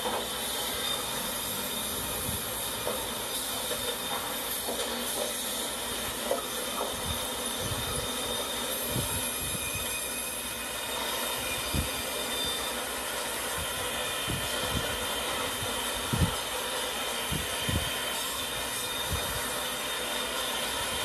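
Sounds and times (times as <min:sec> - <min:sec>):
machinery rumble and hiss: 0:00.0 - 0:21.0.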